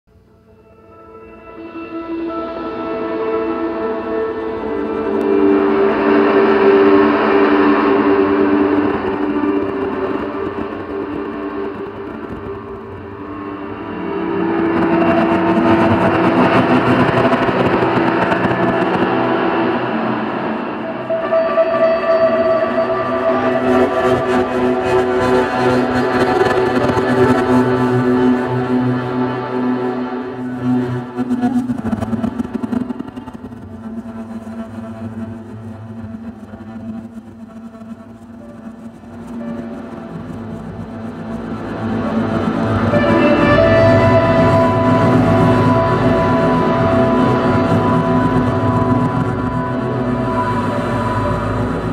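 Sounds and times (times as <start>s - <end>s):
ambient drone music: 0.1s - 51.9s.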